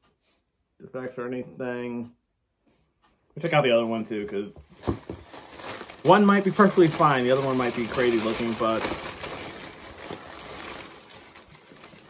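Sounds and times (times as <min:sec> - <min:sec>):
tissue paper rustling: 0:04.7 - 0:12.0.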